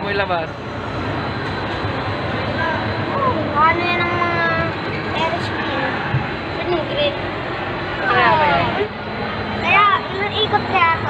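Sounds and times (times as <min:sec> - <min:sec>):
crowd hubbub: 0:00.0 - 0:11.0
ride machinery rumbling: 0:00.0 - 0:11.0
child's voice: 0:02.6 - 0:06.0, 0:09.6 - 0:11.0.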